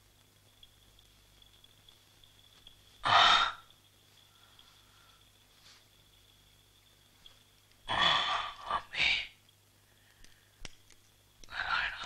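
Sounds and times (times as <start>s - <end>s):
faint steady high tone: 0.0s - 10.6s.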